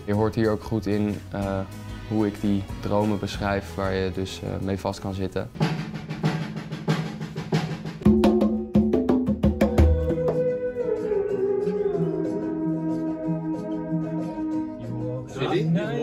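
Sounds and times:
drum kit with kick drum hits: 5.6s - 10.5s
theremin wavering note: 9.7s - 15.2s.

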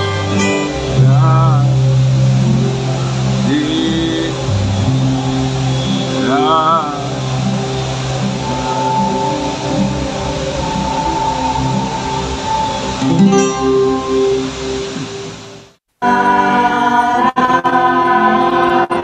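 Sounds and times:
acoustic and electric guitar: 0.0s - 19.0s.

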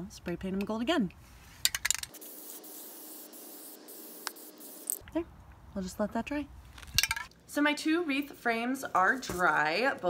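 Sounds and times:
aerosol can spraying: 1.7s - 5.0s.

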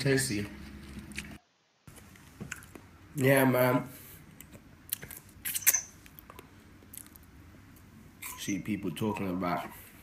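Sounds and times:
wet mouth eating sounds: 2.0s - 2.9s, 4.4s - 7.3s.

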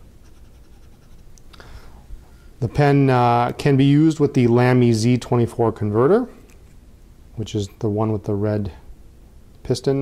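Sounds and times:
pen nib scratching on paper: 0.2s - 1.2s.

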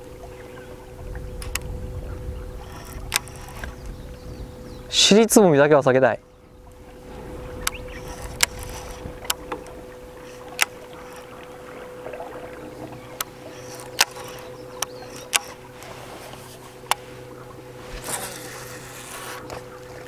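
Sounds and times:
electric motor humming and whining: 0.0s - 5.1s, 6.2s - 20.0s
sharp clicks and knocks: 2.7s - 3.8s, 13.2s - 17.0s.

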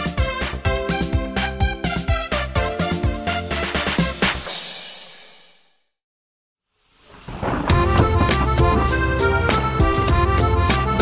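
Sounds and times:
music with steady beat: 0.0s - 5.1s, 7.7s - 11.0s
thunder and rain effect: 6.8s - 9.4s.

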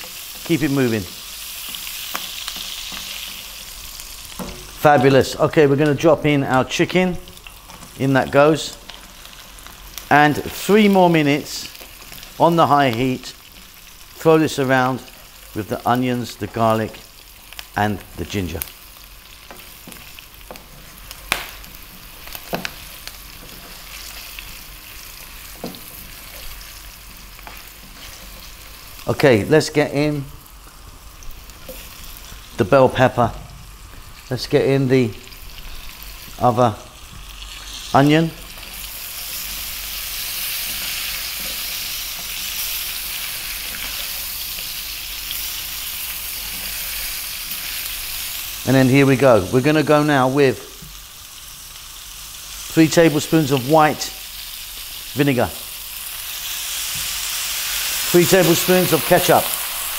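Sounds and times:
food sizzling in hot oil: 0.0s - 59.9s.

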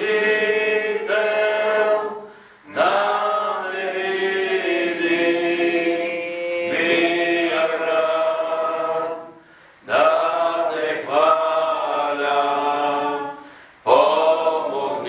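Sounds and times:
voices singing religious chant: 0.0s - 15.0s.

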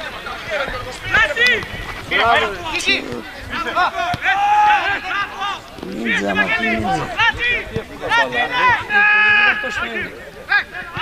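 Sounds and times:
men shouting: 5.8s - 7.6s.

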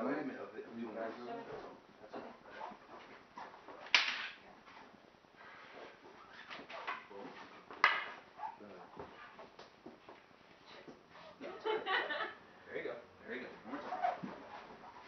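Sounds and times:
wooden weapons clacking: 3.8s - 4.4s, 7.8s - 8.2s
faint taps and shuffling: 4.6s - 11.2s.

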